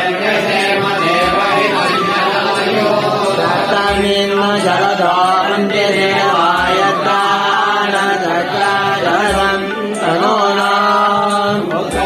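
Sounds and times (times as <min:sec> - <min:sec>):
steady drone: 0:00.0 - 0:11.2
voices chanting: 0:00.0 - 0:12.0
low beat: 0:00.2 - 0:12.0.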